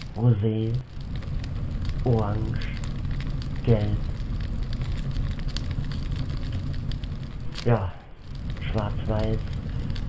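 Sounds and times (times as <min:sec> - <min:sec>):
fire burning with crackles: 0:00.0 - 0:10.0.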